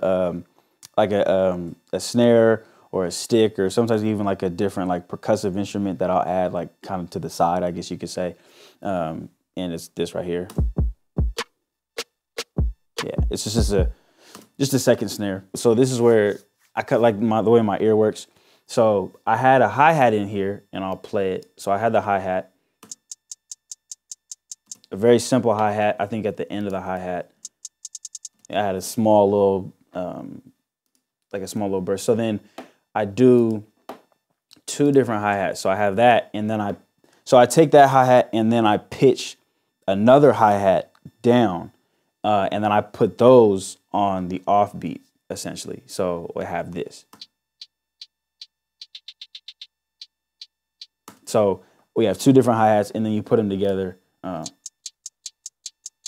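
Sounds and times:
crisp hi-hat ticks: 12.4 - 13.9, 22.8 - 25.0, 26.6 - 28.6, 47.1 - 51.0, 54.4 - 56.0.

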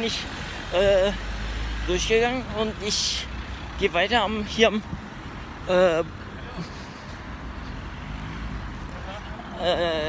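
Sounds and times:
city traffic rumble: 0.0 - 10.0
man speaking: 1.9 - 4.9, 5.6 - 6.6.

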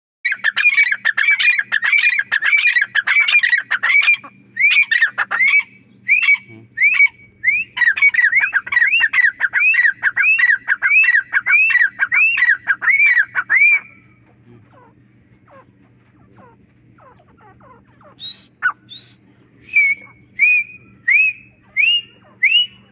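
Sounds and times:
francolin calling: 0.3 - 22.9.

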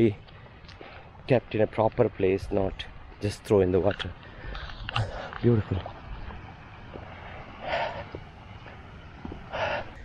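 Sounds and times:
wind rumble on microphone: 1.2 - 10.0.

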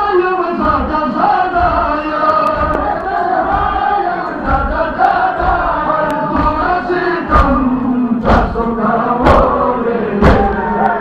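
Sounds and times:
group chanting a lament: 0.0 - 11.0
chest-beating thuds: 0.6 - 10.6.

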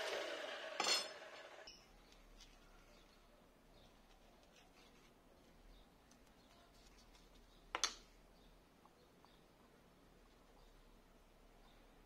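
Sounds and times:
miter saw blade winding down: 0.0 - 1.7.

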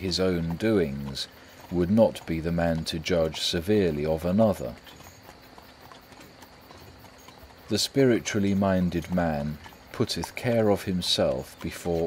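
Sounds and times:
faint horse hooves clip-clopping: 0.0 - 12.0.

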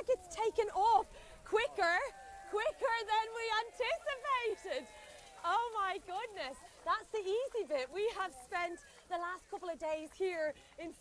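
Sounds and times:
voices talking and exclaiming: 0.0 - 11.0.

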